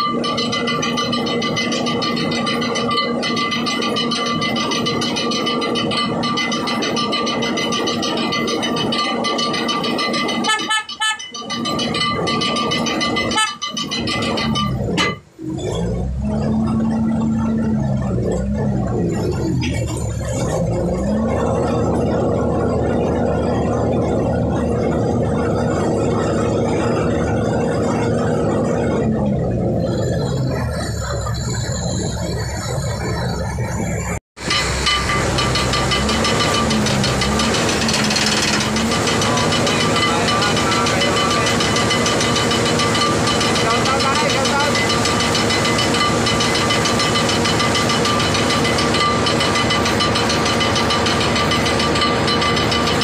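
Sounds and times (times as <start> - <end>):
crane engine revving under load: 0.0 - 53.0.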